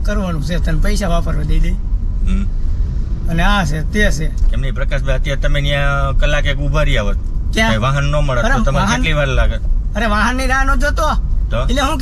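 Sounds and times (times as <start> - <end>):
man speaking: 0.0 - 2.6, 3.3 - 12.0
car engine and tyres rumbling: 0.0 - 12.0
brief vocal sound: 2.2 - 2.6.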